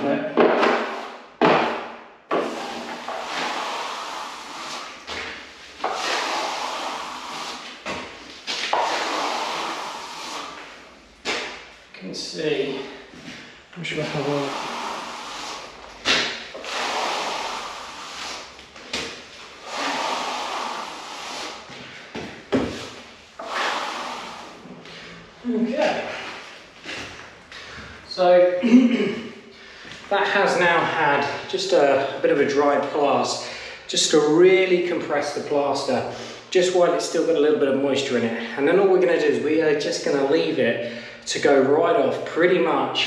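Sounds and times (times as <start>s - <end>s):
trowel scraping plaster wall: 0.4s - 11.6s, 14.0s - 25.1s.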